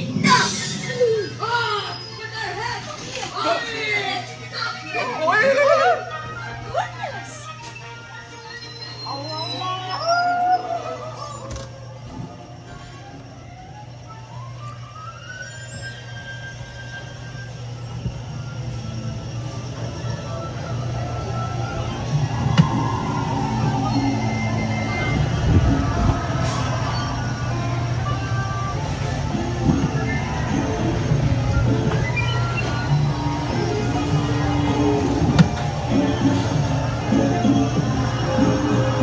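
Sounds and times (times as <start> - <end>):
crowd noise: 0.0 - 12.6, 19.2 - 39.0
music playing: 3.1 - 39.0
rising whistle-like tones: 8.4 - 39.0
ride vehicle humming on track: 11.2 - 39.0.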